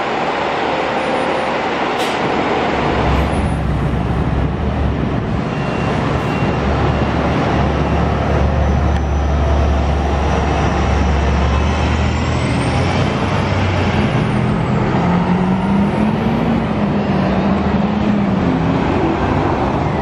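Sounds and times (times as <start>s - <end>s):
bus engines rumbling: 0.0s - 20.0s
street traffic: 0.0s - 20.0s.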